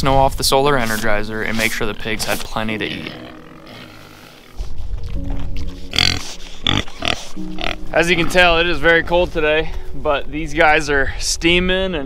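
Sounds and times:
background music: 0:00.0 - 0:12.0
pigs grunting: 0:00.8 - 0:08.6.

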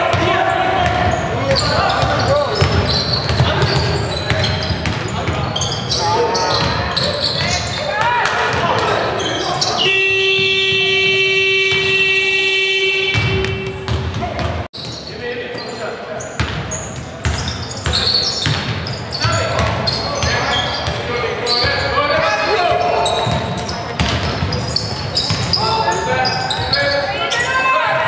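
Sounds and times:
basketball bouncing on wooden court: 0:00.0 - 0:05.6, 0:06.4 - 0:08.9, 0:13.1 - 0:15.0, 0:16.4 - 0:21.1, 0:23.1 - 0:25.6
scoreboard buzzer: 0:09.8 - 0:14.0.

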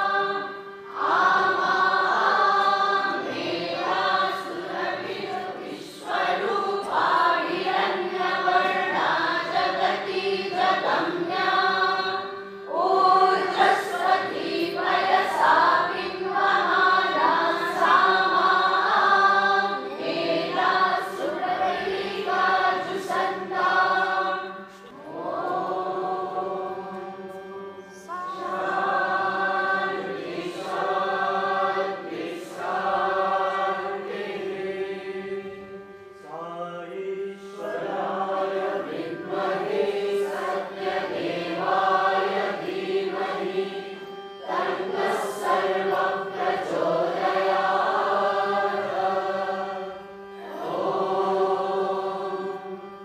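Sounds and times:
congregation singing: 0:00.0 - 0:53.0
harmonium drone: 0:00.0 - 0:53.0.

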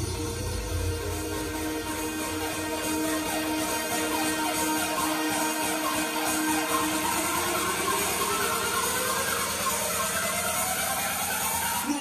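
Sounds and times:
rising layered tones music: 0:00.0 - 0:12.0.

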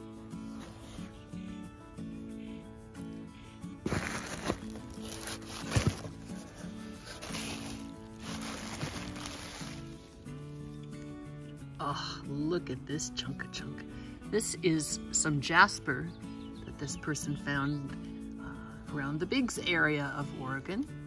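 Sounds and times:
background music: 0:00.0 - 0:21.0
plastic packing crinkling: 0:03.9 - 0:10.0.

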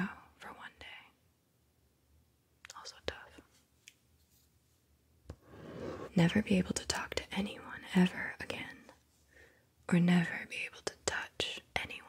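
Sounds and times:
soft whispering: 0:00.0 - 0:01.2, 0:02.7 - 0:03.6, 0:05.4 - 0:09.0, 0:09.9 - 0:12.0
pen scratching on paper: 0:05.4 - 0:06.3.

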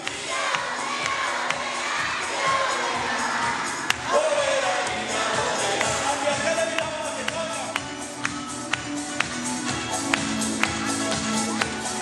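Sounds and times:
children shouting and cheering: 0:00.0 - 0:04.8.

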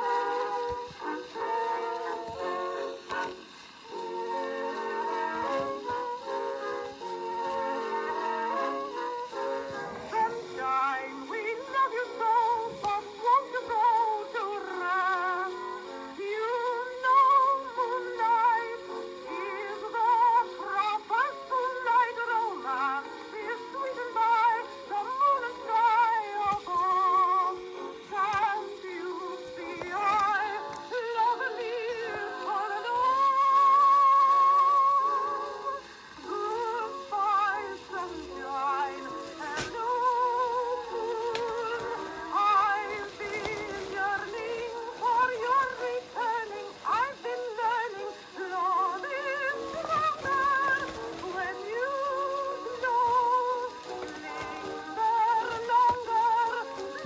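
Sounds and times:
woman singing with vibrato: 0:00.0 - 0:57.0.

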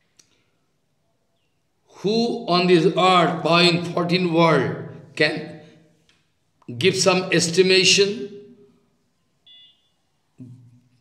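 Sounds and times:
faint high electronic beep: 0:09.4 - 0:10.5.

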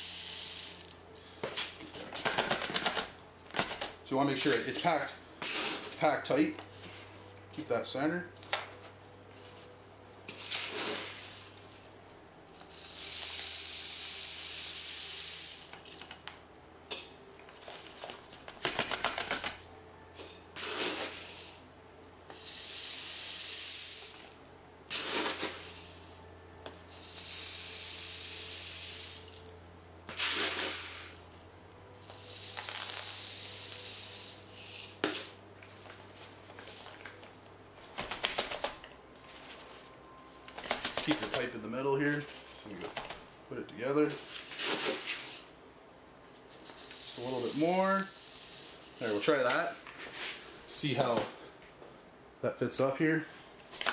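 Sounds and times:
carbon beads pouring rattle: 0:00.0 - 0:01.0, 0:12.7 - 0:16.1, 0:22.4 - 0:26.0, 0:27.0 - 0:29.5, 0:32.1 - 0:34.9, 0:46.6 - 0:49.4
low steady hum: 0:03.0 - 0:14.6, 0:15.4 - 0:18.6, 0:19.6 - 0:23.0, 0:23.8 - 0:53.8.

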